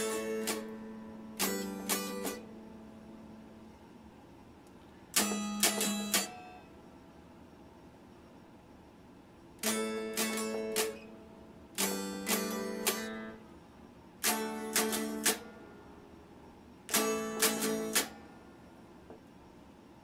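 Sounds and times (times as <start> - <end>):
electric guitar picked notes: 0.0 - 2.6, 9.6 - 11.2, 11.8 - 13.4.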